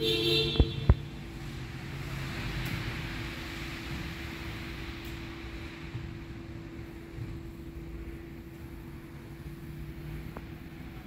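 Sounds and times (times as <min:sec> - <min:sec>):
constant low hum: 0:02.6 - 0:11.0.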